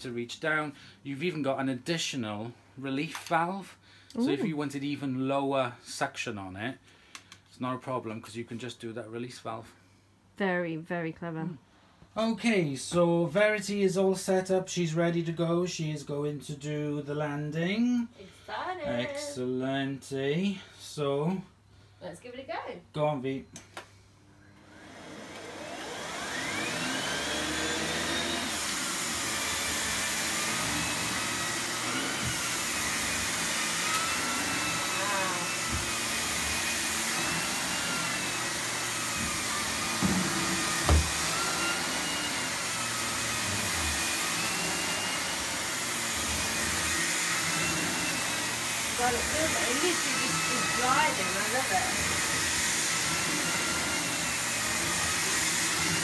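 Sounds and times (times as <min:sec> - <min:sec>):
vacuum cleaner motor whine: 0:24.6 - 0:56.0
vacuum brush on carpet: 0:24.7 - 0:56.0.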